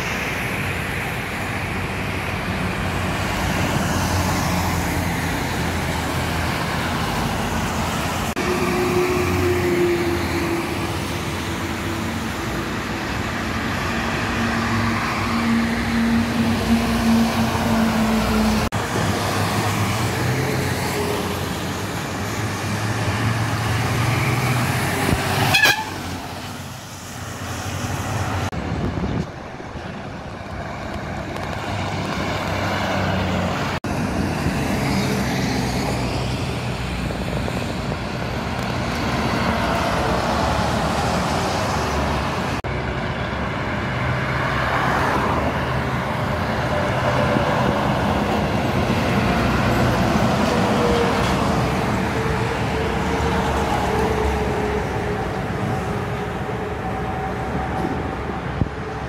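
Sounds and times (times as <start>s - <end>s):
highway traffic passing: 0.0s - 59.0s
truck horn held note: 25.4s - 26.0s.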